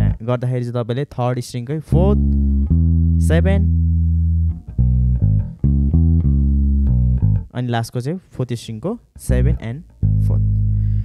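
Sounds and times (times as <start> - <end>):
electric bass plucked notes: 0.0 - 0.3, 1.8 - 7.7, 9.1 - 11.0.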